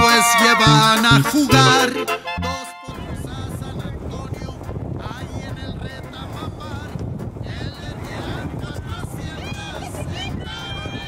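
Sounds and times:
wind buffeting microphone: 2.9 - 11.0.

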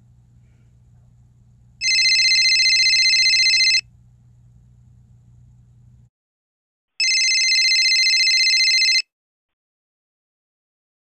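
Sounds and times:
electronic telephone ringing tone: 1.8 - 3.8, 7.0 - 9.1.

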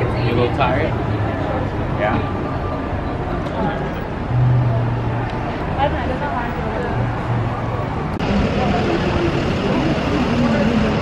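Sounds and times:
city street noise: 0.0 - 11.0.

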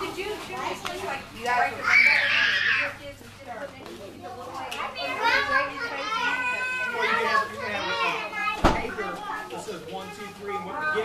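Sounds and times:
children's excited voices: 1.8 - 3.0, 4.8 - 11.0.

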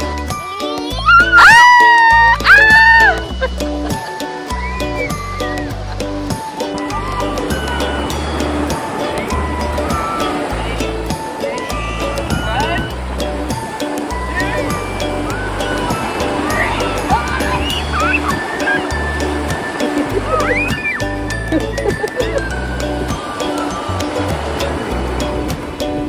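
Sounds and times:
music with bass beat: 2.1 - 26.0
small waves breaking on beach: 6.2 - 26.0.

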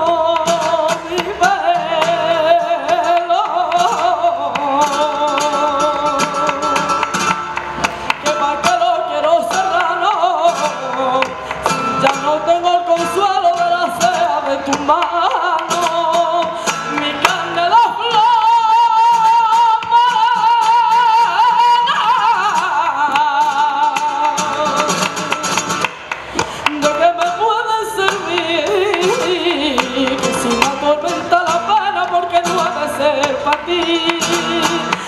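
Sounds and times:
strummed guitar: 0.0 - 35.0
woman singing flamenco: 0.0 - 35.0.

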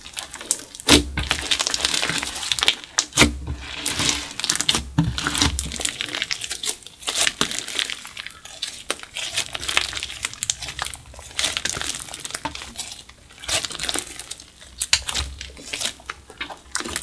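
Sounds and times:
slime crackling and popping: 0.0 - 17.0.

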